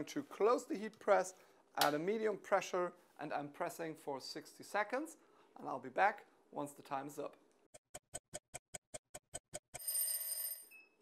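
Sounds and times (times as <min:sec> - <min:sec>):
bell-like ring: 0:09.8 - 0:11.0.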